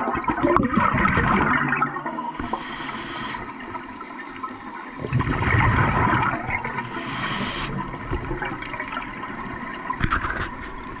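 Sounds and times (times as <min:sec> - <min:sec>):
bubbling of exhaled air underwater: 0:00.0 - 0:11.0
scuba regulator hiss: 0:02.2 - 0:03.6, 0:06.7 - 0:07.9.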